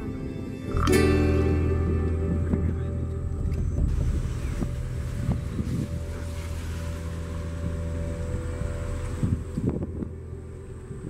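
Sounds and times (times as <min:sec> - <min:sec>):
wind on microphone: 0:00.0 - 0:11.0
car driving road and engine noise: 0:00.9 - 0:11.0.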